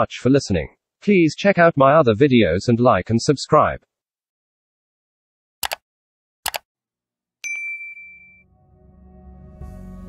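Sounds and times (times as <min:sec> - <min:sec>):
bright bell ding: 0:07.4 - 0:08.5
soft ambient music: 0:08.4 - 0:10.0.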